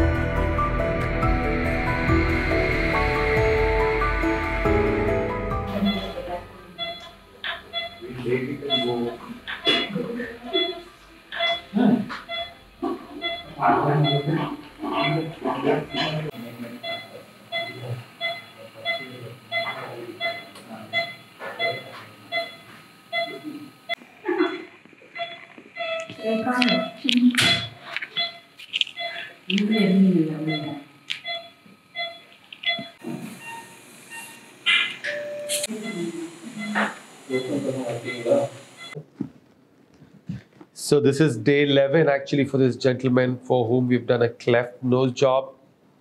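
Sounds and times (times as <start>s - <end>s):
patient monitor pulse beeps: 5.6s - 39.0s.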